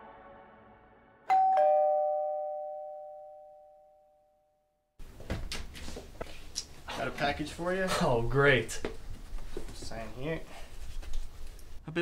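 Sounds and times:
two-tone doorbell chime: 1.3 - 4.5.

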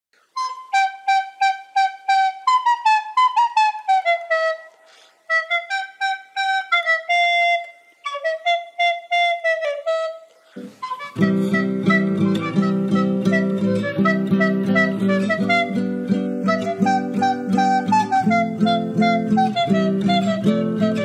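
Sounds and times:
woodwind pipe melody: 0.3 - 21.0.

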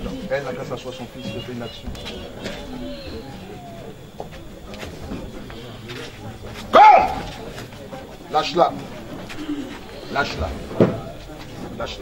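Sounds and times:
faint background voices: 0.0 - 12.0
short loud cry: 6.7 - 7.3.

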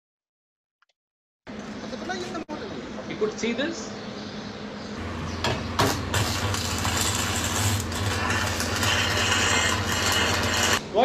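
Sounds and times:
steady low hum: 1.5 - 11.0.

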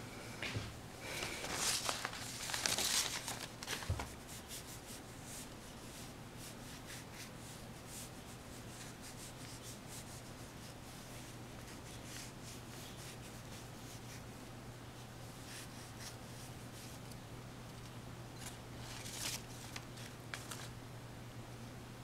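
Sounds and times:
low steady hum: 0.0 - 22.0
paper rustling: 1.1 - 4.3, 18.4 - 20.8
brush scratching on paper: 4.2 - 14.3.

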